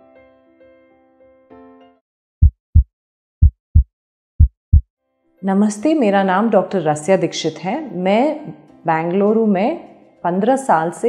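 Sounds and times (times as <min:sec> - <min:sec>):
soft keyboard music: 0:00.0 - 0:02.0
deep heartbeat thumps: 0:02.4 - 0:04.8.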